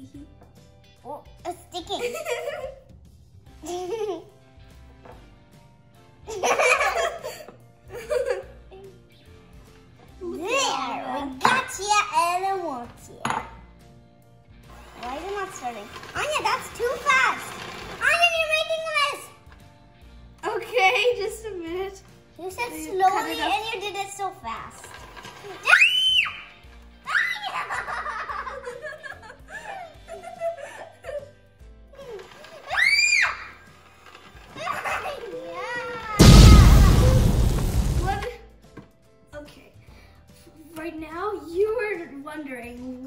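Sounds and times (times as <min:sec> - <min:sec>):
girls giggling and laughing: 0:06.3 - 0:09.0, 0:27.5 - 0:31.4.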